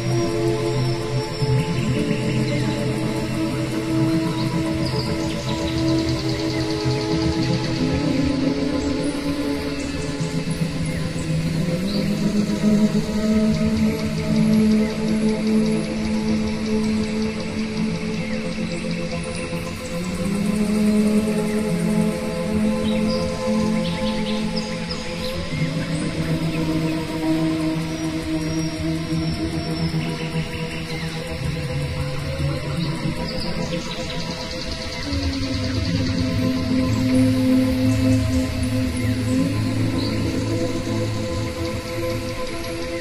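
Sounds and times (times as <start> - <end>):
slow ambient music: 0.0 - 43.0.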